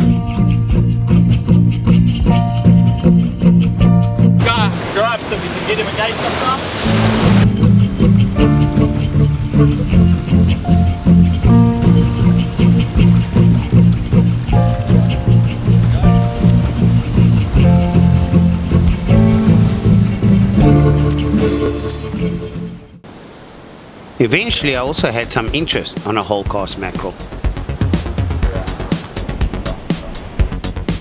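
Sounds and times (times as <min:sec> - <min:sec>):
music with bass and beat: 0:00.0 - 0:04.6, 0:06.9 - 0:23.0, 0:27.2 - 0:31.0
surf breaking over rocks: 0:04.4 - 0:22.2, 0:23.0 - 0:31.0.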